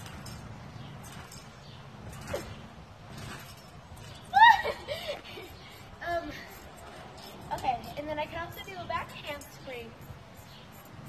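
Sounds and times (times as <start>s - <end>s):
trampoline springs creaking: 0.0s - 11.0s.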